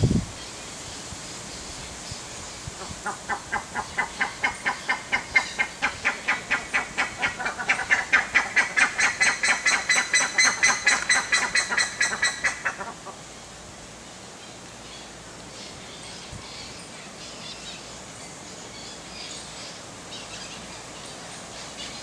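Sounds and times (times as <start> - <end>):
bird calling in repeated notes: 2.8 - 13.2.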